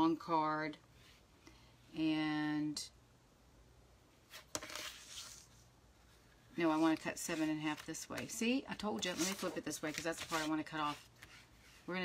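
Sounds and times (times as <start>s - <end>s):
card sliding rustle: 4.3s - 5.6s, 9.0s - 11.9s.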